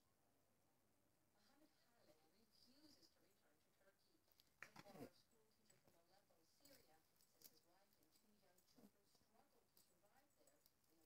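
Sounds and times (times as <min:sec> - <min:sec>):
faint distant voices: 0:00.0 - 0:11.0.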